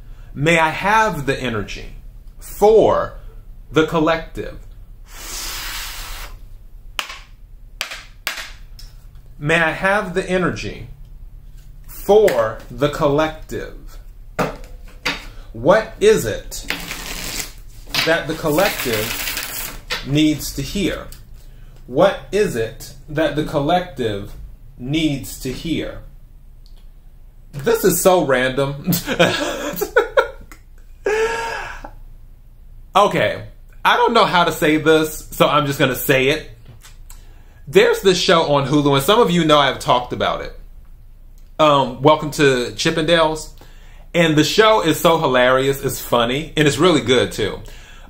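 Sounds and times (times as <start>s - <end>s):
cards rustling: 16.6s - 20.0s
man laughing: 28.8s - 32.0s.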